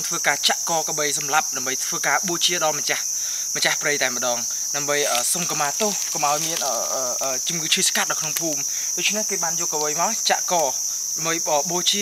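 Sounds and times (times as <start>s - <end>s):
insects droning: 0.0s - 12.0s
man talking: 0.0s - 12.0s.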